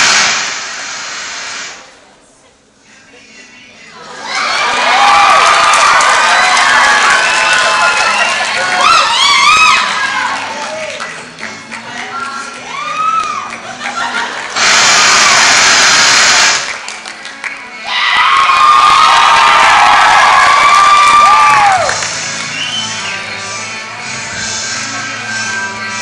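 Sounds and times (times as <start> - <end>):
music playing: 2.8 - 26.0
crowd cheering and shouting: 4.0 - 11.0, 12.4 - 14.2, 17.7 - 23.1.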